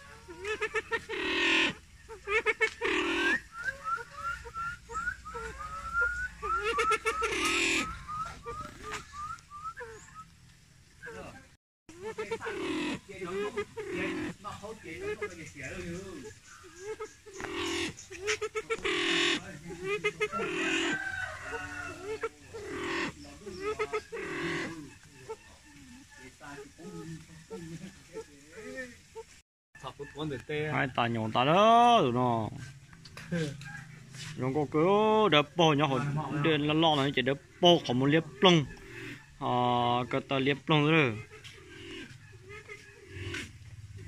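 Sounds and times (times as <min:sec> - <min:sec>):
harsh bird calls: 0:00.0 - 0:44.0.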